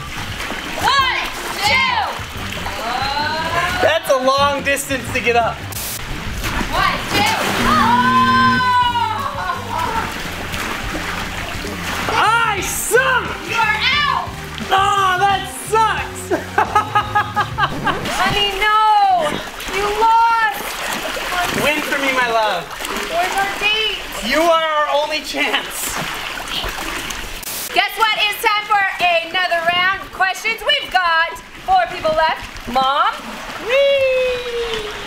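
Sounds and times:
water splash: 0:00.0 - 0:04.3, 0:05.6 - 0:15.7, 0:16.5 - 0:28.2, 0:30.9 - 0:35.0
background music with bass line: 0:00.0 - 0:19.4
people shouting excitedly: 0:00.8 - 0:02.2, 0:06.7 - 0:10.1, 0:12.1 - 0:16.2
people laughing: 0:08.8 - 0:10.2, 0:16.2 - 0:18.4.

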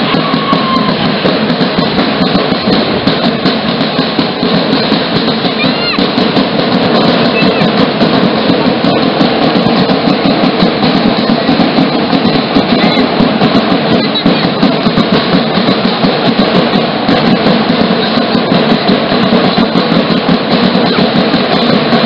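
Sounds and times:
loud rapid drumming: 0:00.0 - 0:22.0.

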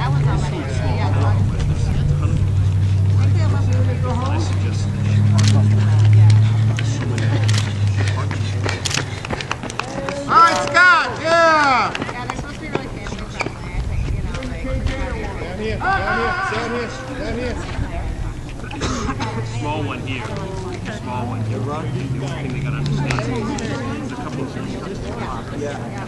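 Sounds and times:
steady low hum: 0:00.0 - 0:26.0
sharp claps: 0:06.1 - 0:10.8
voices whooping: 0:09.7 - 0:12.0, 0:15.7 - 0:18.0.

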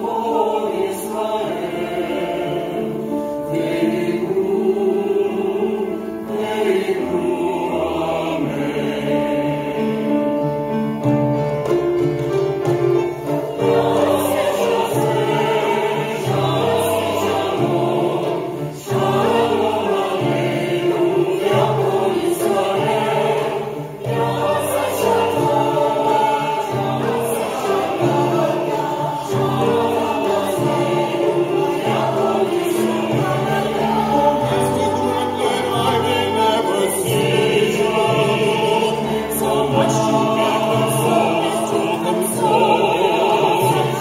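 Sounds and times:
mixed choir singing: 0:00.0 - 0:44.0
piano accompaniment: 0:00.0 - 0:44.0.

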